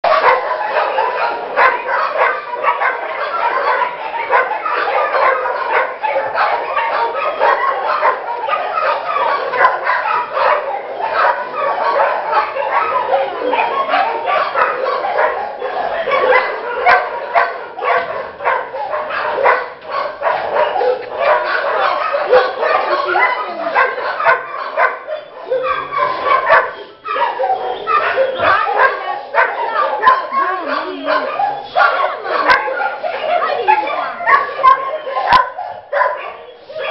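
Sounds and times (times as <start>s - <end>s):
many dogs barking and yipping: 0.0s - 36.9s.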